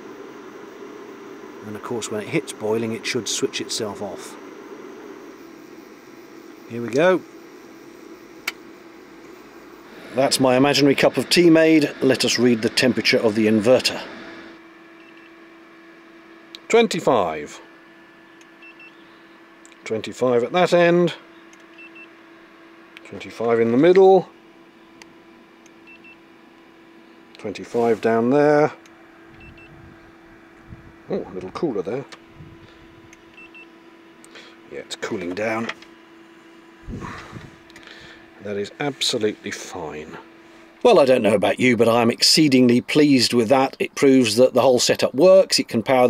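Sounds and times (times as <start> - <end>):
electrical equipment hum: 0.0 - 46.0.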